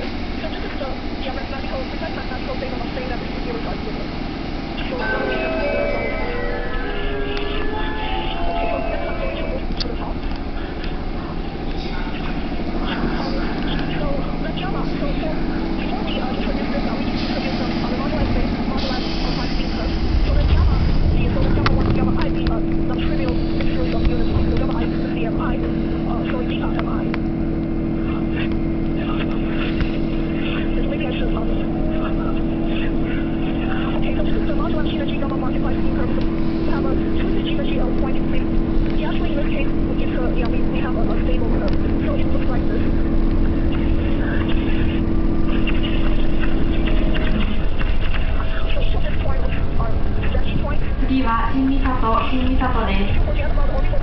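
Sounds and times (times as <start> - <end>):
low rumble: 0.0 - 54.0
train motor hum: 0.0 - 54.0
faint rising whine: 1.2 - 51.2.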